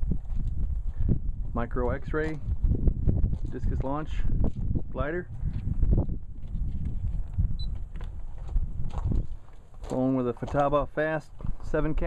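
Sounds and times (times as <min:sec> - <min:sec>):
wind rumble on microphone: 0:00.0 - 0:12.0
faint footfalls on grass: 0:00.1 - 0:12.0.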